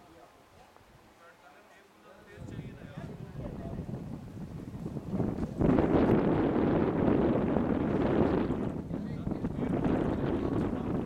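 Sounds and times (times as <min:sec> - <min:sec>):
wind buffeting microphone: 0:02.3 - 0:11.0.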